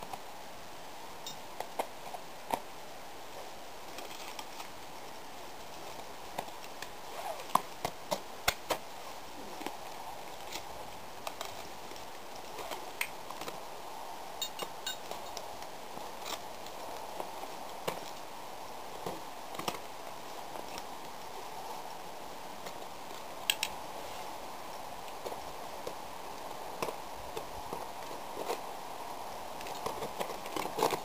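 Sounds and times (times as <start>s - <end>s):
background hiss: 0.0s - 31.0s.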